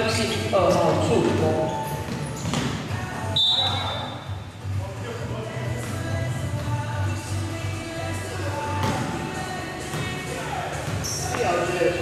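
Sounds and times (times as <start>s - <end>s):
background music: 0.0s - 12.0s
basketball bouncing on court floor: 0.6s - 3.0s, 8.7s - 9.2s, 9.9s - 10.2s.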